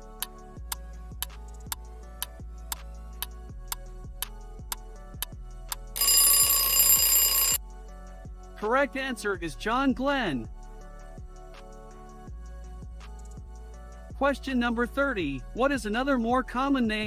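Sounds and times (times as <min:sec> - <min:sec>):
alarm clock ringing: 0:06.0 - 0:07.6.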